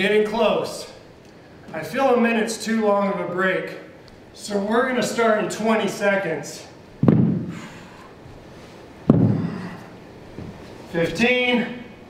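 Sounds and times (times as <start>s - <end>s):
dumbbells thudding on mat: 7.0s - 7.7s, 9.1s - 9.6s.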